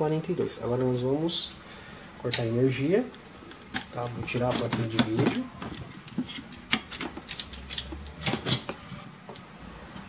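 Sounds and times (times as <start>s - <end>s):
computer hardware clicks and rattles: 3.5s - 8.8s.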